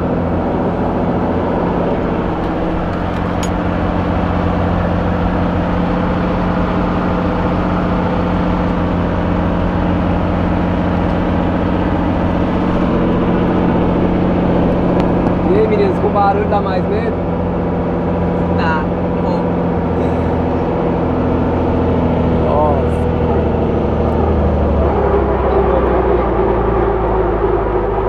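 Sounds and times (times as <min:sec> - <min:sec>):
helicopter engine and rotor drone: 0:00.0 - 0:28.0.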